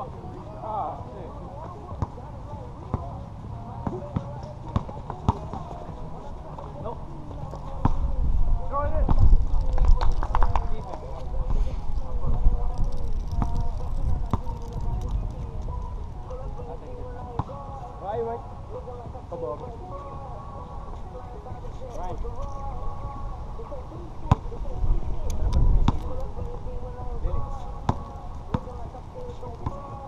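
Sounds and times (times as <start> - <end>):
players' voices: 0.0 - 30.0.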